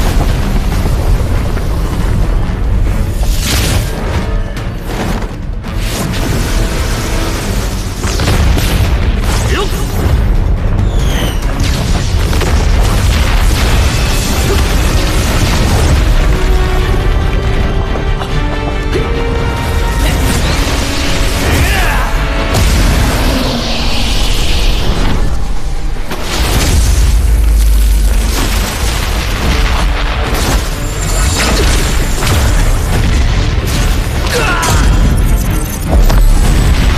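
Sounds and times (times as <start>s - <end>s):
music: 0.0s - 36.9s
whooshing magical energy surges: 20.1s - 28.0s
rocks shattering: 26.2s - 36.9s.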